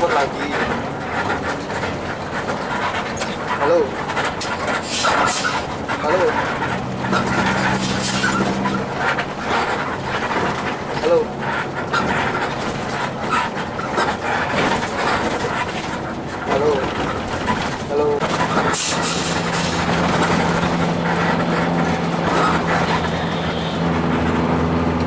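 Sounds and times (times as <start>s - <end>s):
rattles and knocks in cabin: 0.0s - 23.2s
bus engine running: 0.0s - 25.0s
road noise: 0.0s - 25.0s.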